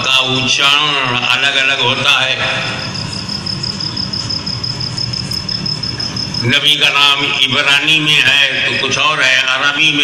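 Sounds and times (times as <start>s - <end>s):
steady low hum: 0.0s - 10.0s
thin high whine: 2.0s - 9.0s.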